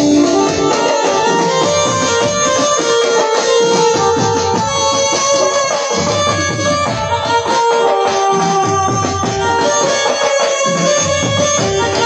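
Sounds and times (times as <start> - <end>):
steady drum beat: 0.0 - 12.0
sustained melody line: 0.0 - 12.0.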